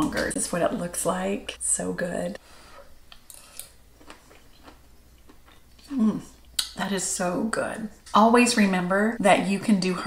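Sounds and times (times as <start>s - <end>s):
person chewing food: 3.1s - 6.7s.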